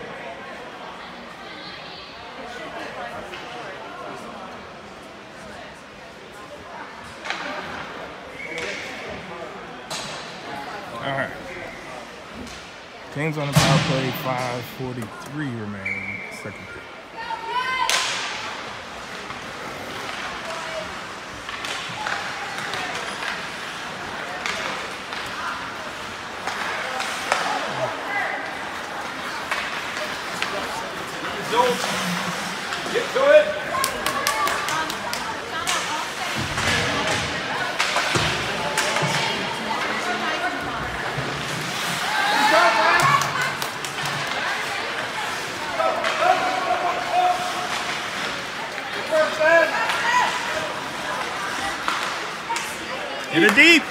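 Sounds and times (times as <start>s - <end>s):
hockey sticks and puck clacking: 7.1s - 9.0s, 9.9s - 10.5s, 17.9s - 53.9s.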